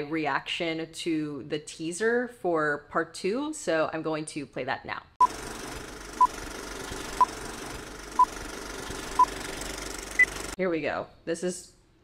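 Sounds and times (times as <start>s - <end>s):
film projector whirring: 5.2s - 10.6s.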